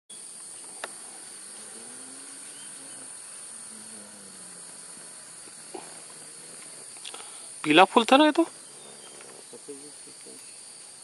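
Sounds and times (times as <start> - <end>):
forest insects droning: 0.1 - 11.0.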